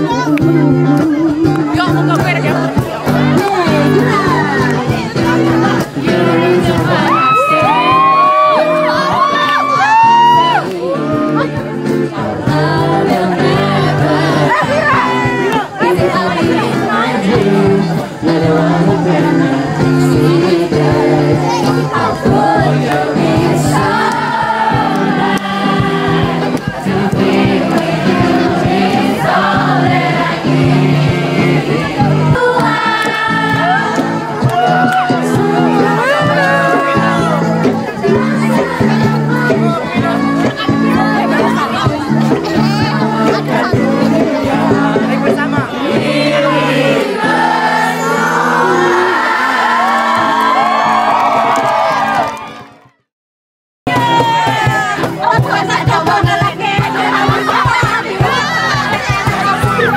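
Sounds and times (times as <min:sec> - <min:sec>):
song with singing over beat: 0:00.0 - 0:51.4, 0:53.9 - 0:59.9.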